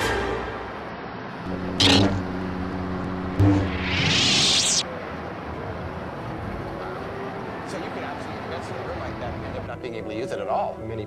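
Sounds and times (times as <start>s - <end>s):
lightsaber switching off whoosh: 1.5s - 4.8s.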